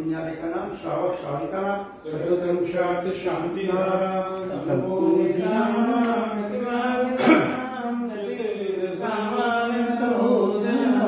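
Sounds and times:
voices chanting mantras: 0:00.0 - 0:11.0.

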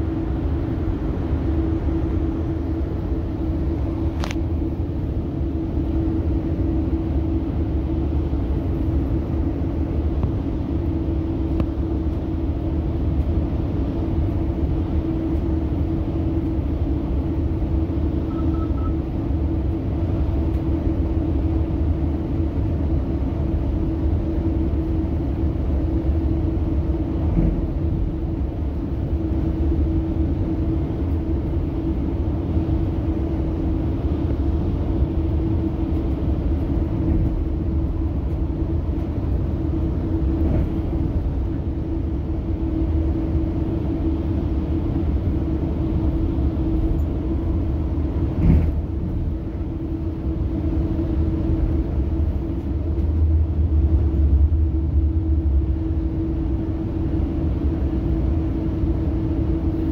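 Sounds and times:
low droning hum: 0:00.0 - 0:59.9
train rumbling inside coach: 0:00.0 - 0:59.9.

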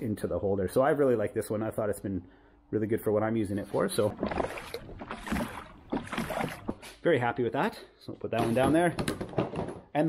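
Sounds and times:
water splashing around kayak: 0:03.9 - 0:07.0.

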